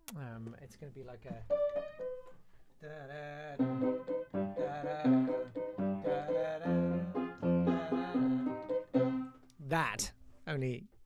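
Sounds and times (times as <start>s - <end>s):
upright piano waltz in chords: 3.6s - 9.3s.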